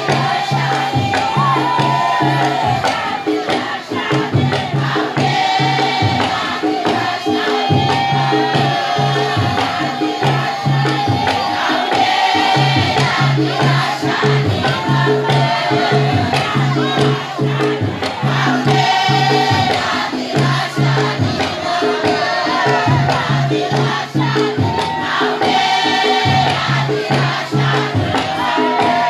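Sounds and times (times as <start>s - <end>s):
group chanting in chorus: 0.0s - 29.0s
percussion steady beat: 0.0s - 29.0s.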